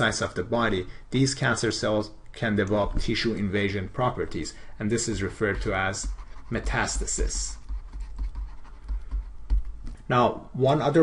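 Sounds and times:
faint stylus scratching: 0:05.0 - 0:09.3
stylus tapping on tablet: 0:05.5 - 0:10.0.

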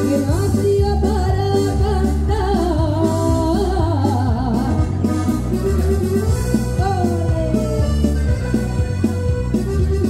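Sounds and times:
woman singing with vibrato: 0:00.0 - 0:08.1
piano accordion chords: 0:04.5 - 0:10.0.

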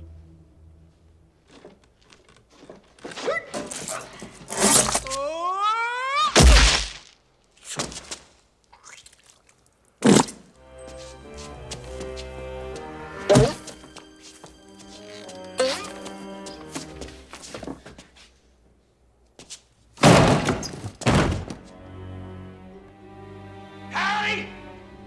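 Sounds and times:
sustained music: 0:00.0 - 0:01.5, 0:10.6 - 0:17.5, 0:21.6 - 0:25.0.

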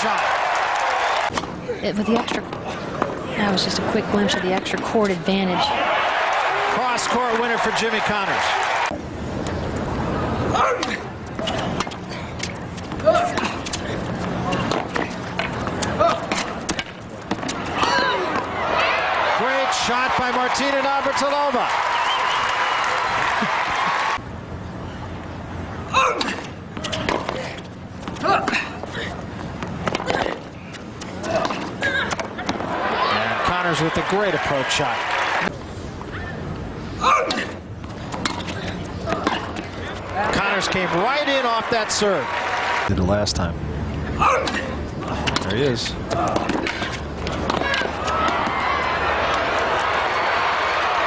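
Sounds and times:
crowd voices: 0:28.2 - 0:51.0
racket hitting tennis ball: 0:46.1 - 0:48.5.

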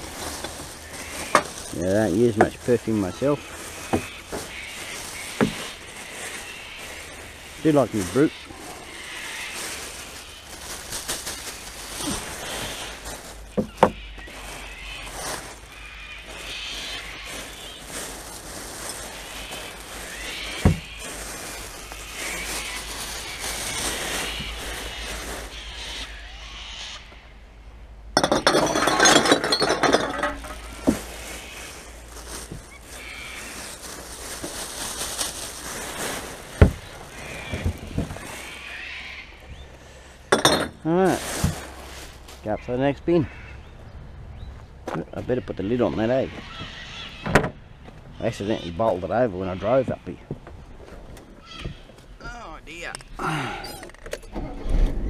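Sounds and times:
plastic bags rustling: 0:00.0 - 0:26.1, 0:28.2 - 0:42.6
glass bottles clinking: 0:28.2 - 0:31.0, 0:40.3 - 0:40.8.

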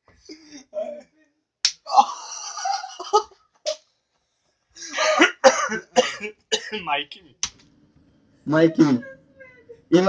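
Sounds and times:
person coughing: 0:04.9 - 0:06.8.

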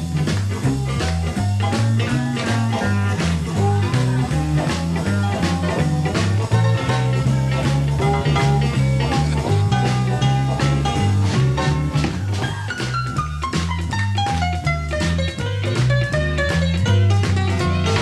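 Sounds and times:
bass line: 0:00.0 - 0:18.0
electric guitar: 0:00.0 - 0:18.0
steady drum beat: 0:00.0 - 0:18.0.

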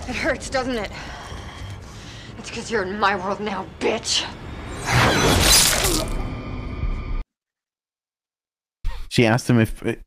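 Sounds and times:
crashing shattering sound effect: 0:04.9 - 0:06.2.

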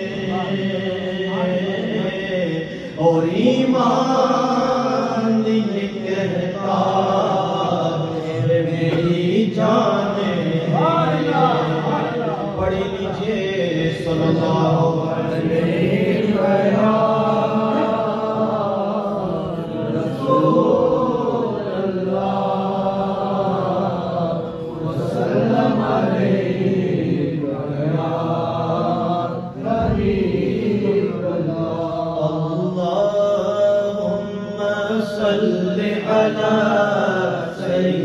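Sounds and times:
voices chanting together: 0:00.0 - 0:38.0.

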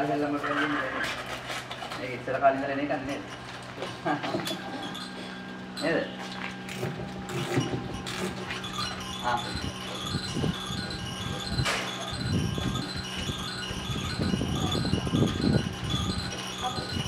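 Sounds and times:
crib mobile chime tune: 0:04.2 - 0:06.8, 0:07.4 - 0:17.0
voices murmuring: 0:07.5 - 0:17.0.

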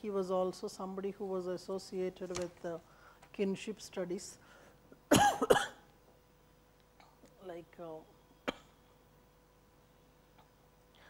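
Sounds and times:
woman coughing: 0:05.1 - 0:05.9, 0:08.5 - 0:08.8.

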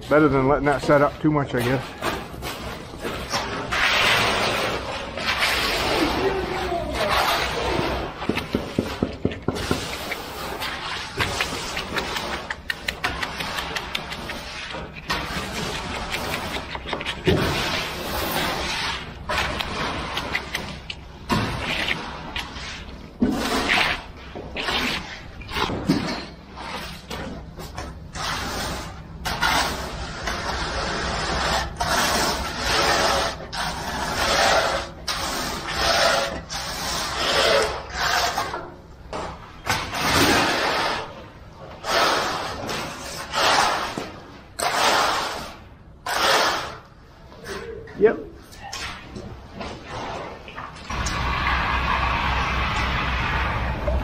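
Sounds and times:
wet scraping of concrete: 0:00.7 - 0:47.7, 0:48.4 - 0:54.0.

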